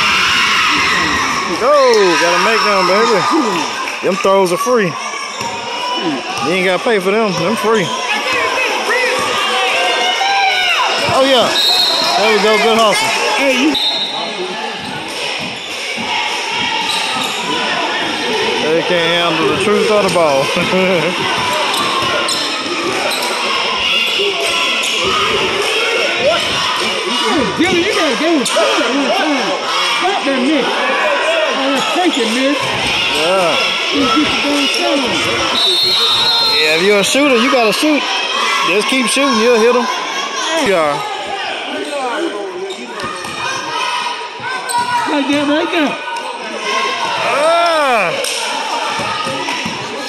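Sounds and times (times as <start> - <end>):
echoing crowd chatter: 0.0 - 50.0
murmur of spectators: 0.0 - 50.0.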